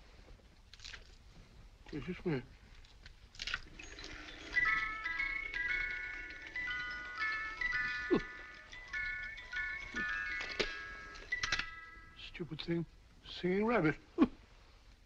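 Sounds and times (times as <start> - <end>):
music toy playing tinkling tune: 3.7 - 12.4
toy mechanism clicks: 3.8 - 12.0.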